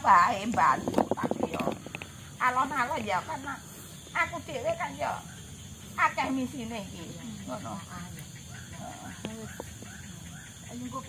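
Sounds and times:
steady high hiss: 0.0 - 11.0.

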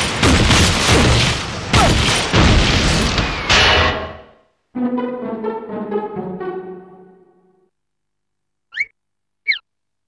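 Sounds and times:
high squeaky cartoon effects: 8.7 - 8.9.

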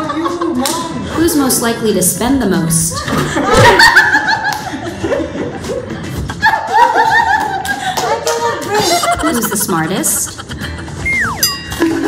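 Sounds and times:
people laughing: 0.0 - 1.2, 2.8 - 12.0.

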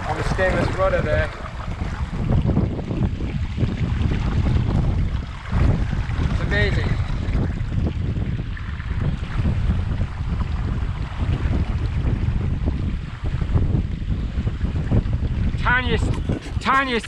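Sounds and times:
sea and wake rushing: 0.0 - 17.0
wind buffeting microphone: 0.0 - 17.0.

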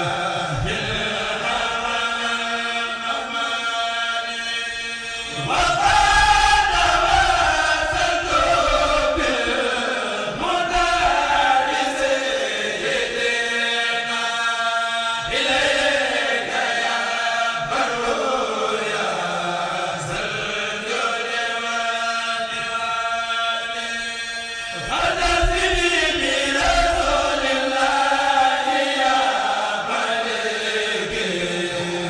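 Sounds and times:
choir chanting: 0.0 - 32.0.

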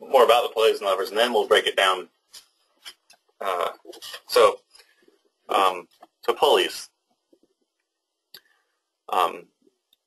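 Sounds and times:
person speaking: 0.0 - 7.6.

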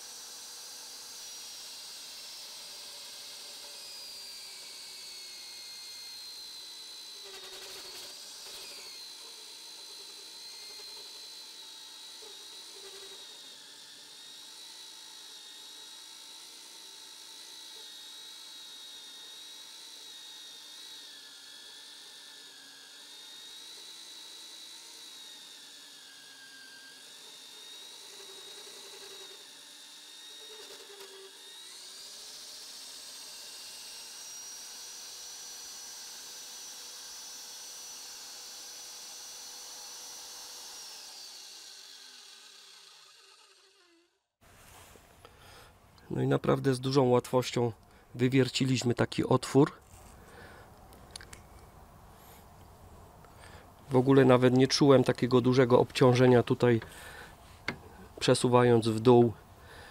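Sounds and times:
magnetic drill motor whining: 0.0 - 44.2, 49.8 - 59.9.

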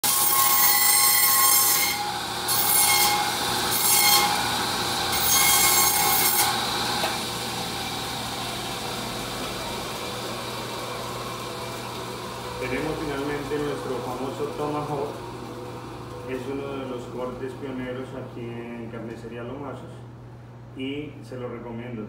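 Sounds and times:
band saw cutting meat: 0.0 - 8.3
band saw running idle: 0.0 - 17.6.

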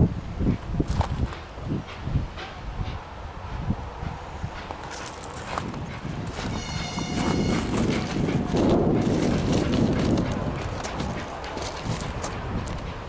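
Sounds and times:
diesel locomotive engine rumble: 0.0 - 13.0
short high tone: 6.5 - 7.8.

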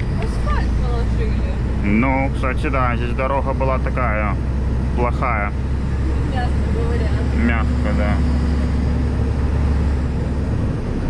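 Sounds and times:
road noise: 0.0 - 11.0
truck diesel engine drone: 0.0 - 11.0.

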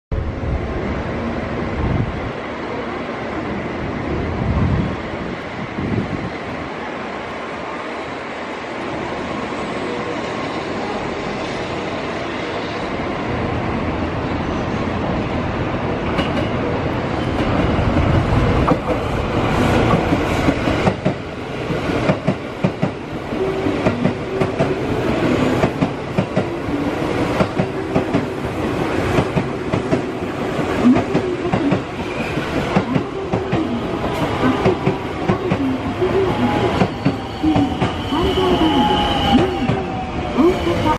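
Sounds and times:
train falling whine: 16.0 - 40.9.

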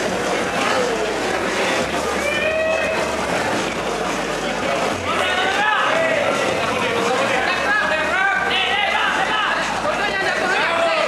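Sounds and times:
crowd of spectators: 0.0 - 11.0.

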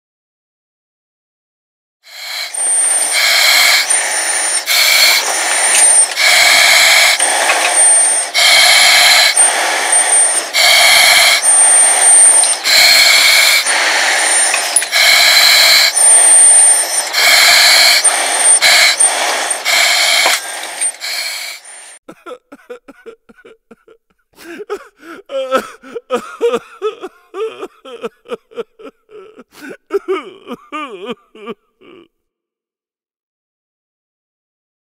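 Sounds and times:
hissing breaths through mask: 2.1 - 22.0, 24.4 - 31.1
thin high whistle: 2.1 - 22.0.

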